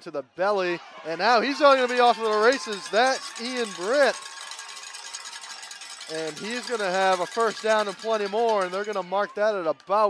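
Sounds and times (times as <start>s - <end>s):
stadium crowd ambience: 0.0s - 10.0s.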